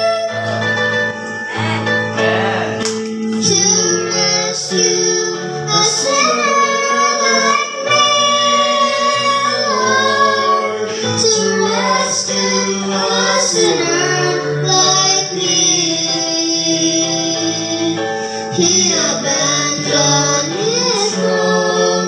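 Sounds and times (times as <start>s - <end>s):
instrumental accompaniment: 0.0s - 22.0s
girl singing gospel song: 3.2s - 22.0s.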